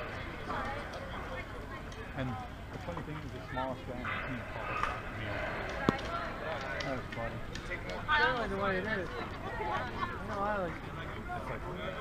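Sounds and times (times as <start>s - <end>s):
chatter of players and spectators: 0.0s - 12.0s.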